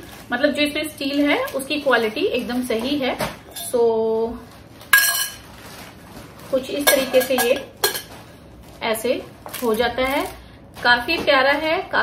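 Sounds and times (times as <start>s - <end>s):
spoon clinking in metal pot: 5.0s - 5.4s, 6.8s - 8.1s.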